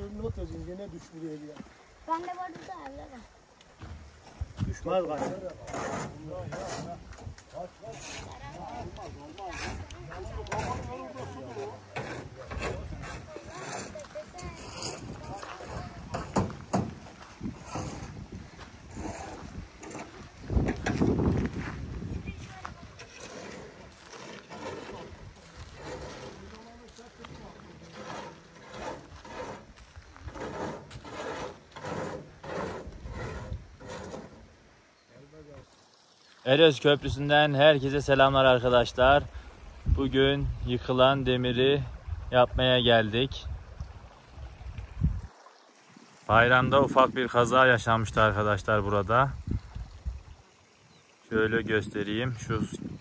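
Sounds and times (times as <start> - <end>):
footsteps on gravel: 0.4 - 4.8, 13.0 - 32.0
wind rush on microphone: 4.3 - 4.9, 14.2 - 23.1, 41.8 - 45.3, 46.3 - 48.3, 49.0 - 50.4, 51.5 - 53.0.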